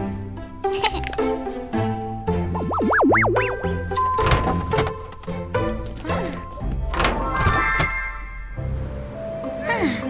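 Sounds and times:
light background music: 0.0 - 10.0
held tone: 2.5 - 5.0.

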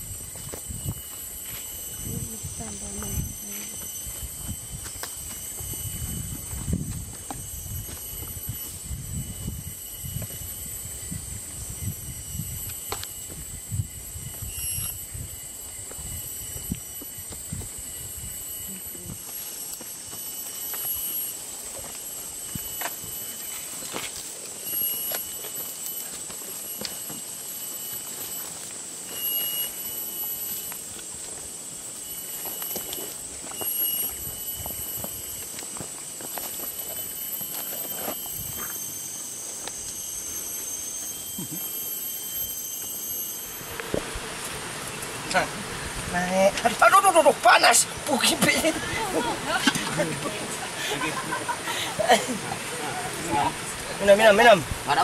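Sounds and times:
high insect drone: 0.0 - 55.0
rustling in dry leaves: 0.0 - 55.0
footsteps on dry leaf litter: 19.2 - 41.0.

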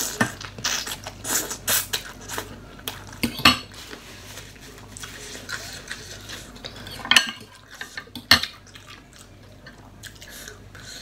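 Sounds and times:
noodles being slurped: 0.0 - 7.0.

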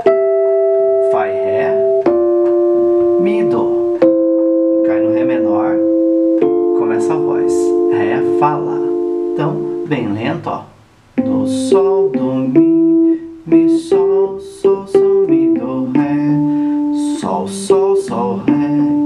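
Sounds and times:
electric piano chords: 0.0 - 10.5, 11.1 - 19.0.

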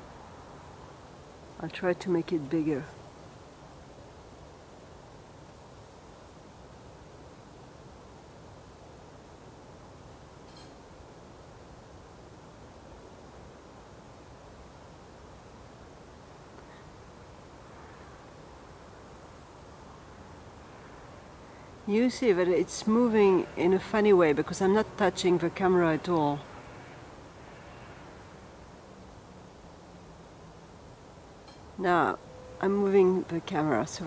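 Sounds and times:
faint background hiss: 0.0 - 34.0.

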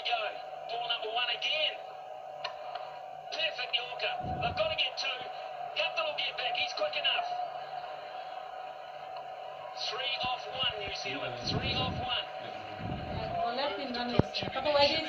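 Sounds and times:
voices from television speaker: 0.0 - 8.4, 9.0 - 15.0
steady hum: 0.0 - 15.0
steady whine: 0.0 - 15.0.

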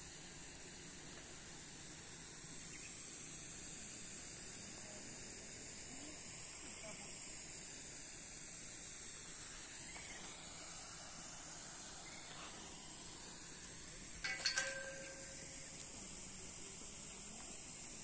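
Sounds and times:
sharp knocks clattering: 14.2 - 16.0.

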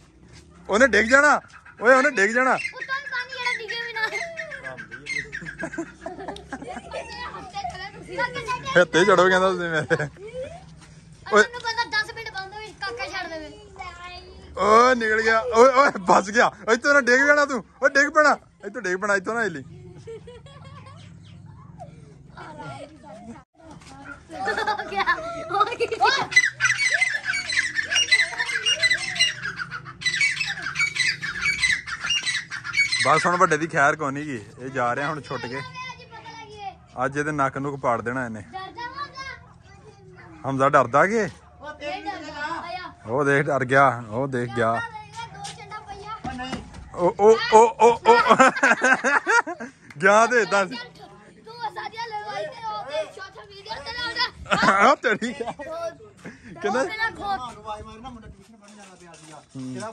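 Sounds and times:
children chattering and calling out: 0.0 - 59.9
francolins calling: 1.2 - 6.2, 26.3 - 33.6
child shouting: 2.2 - 4.6, 35.2 - 36.8, 38.6 - 40.4, 41.6 - 43.0, 47.2 - 48.5, 50.4 - 54.7
bird chirps: 26.3 - 33.5.

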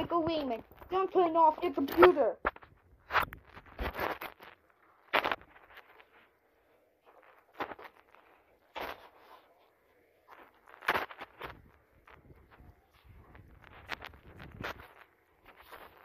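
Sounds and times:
fabric rustling: 0.0 - 16.0.

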